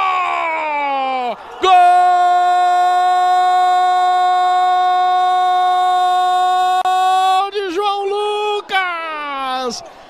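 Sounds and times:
commentator shouting goal call: 0:05.2 - 0:09.8.

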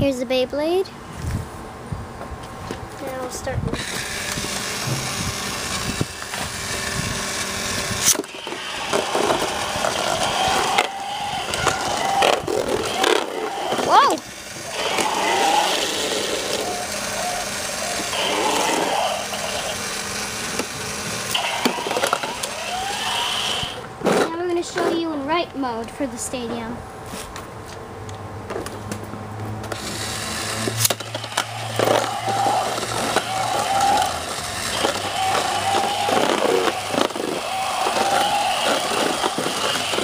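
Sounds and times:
small motor whirring: 0:03.7 - 0:23.9, 0:29.6 - 0:40.0
voices: 0:08.2 - 0:20.7, 0:21.3 - 0:26.8, 0:31.0 - 0:40.0.

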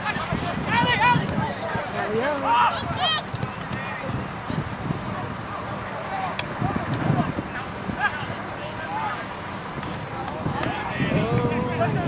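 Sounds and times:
players shouting to each other: 0:02.1 - 0:03.3.

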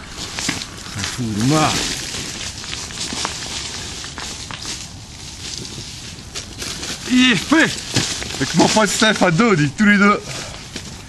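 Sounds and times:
dry undergrowth rustling: 0:00.0 - 0:11.0.

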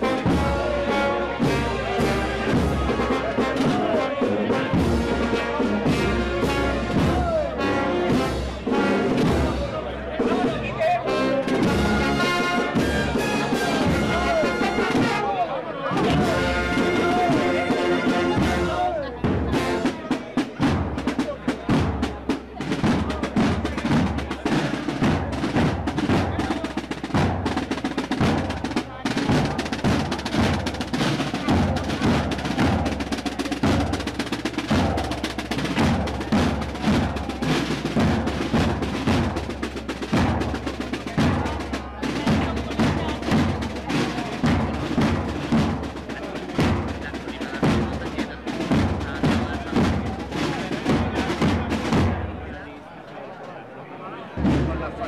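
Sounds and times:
snare drums marching beat: 0:00.0 - 0:15.3, 0:15.9 - 0:52.6, 0:54.4 - 0:55.0
snare drum rolls: 0:00.0 - 0:52.7, 0:54.3 - 0:55.0
bass drum: 0:20.5 - 0:52.4.

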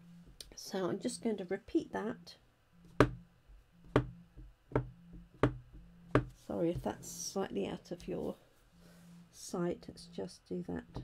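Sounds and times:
stamp tapping on ink pad: 0:03.9 - 0:06.4.

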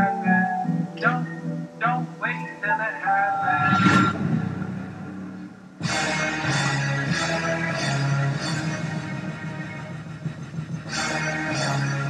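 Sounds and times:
rushing whoosh: 0:03.4 - 0:05.6.

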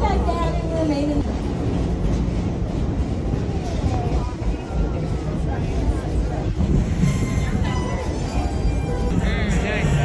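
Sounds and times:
faint voices: 0:00.0 - 0:10.0
moving train rumble: 0:00.0 - 0:10.0.

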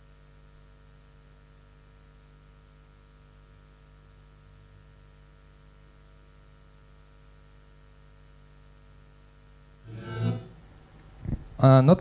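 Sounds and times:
low electrical mains hum: 0:00.0 - 0:12.0
short pitched rising tone: 0:09.9 - 0:10.7.

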